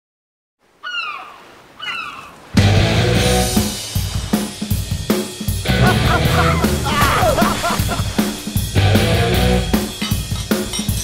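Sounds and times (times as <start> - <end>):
loud rock song with drums: 2.6 - 10.8.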